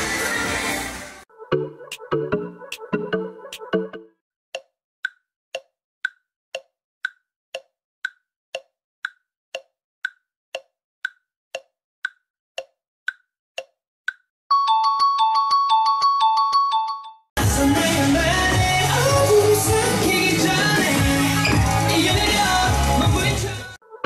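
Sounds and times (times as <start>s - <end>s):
pop music: 0.0s - 4.1s, 17.4s - 24.0s
clock-like timer ticks: 4.5s - 14.3s.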